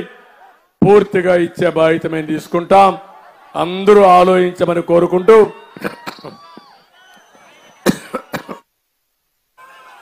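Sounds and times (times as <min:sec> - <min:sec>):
man coughing: 0:07.9 - 0:08.6.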